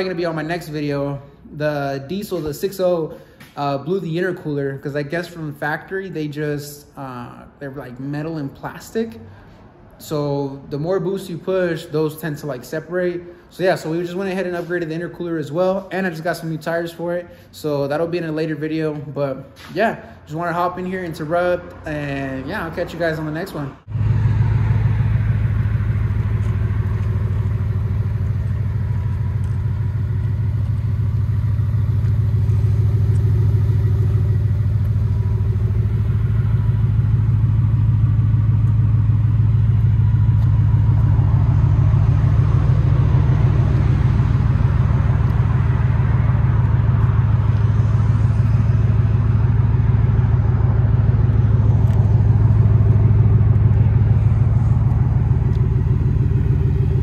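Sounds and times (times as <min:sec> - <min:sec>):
truck engine idling: 0:13.9 - 0:57.0.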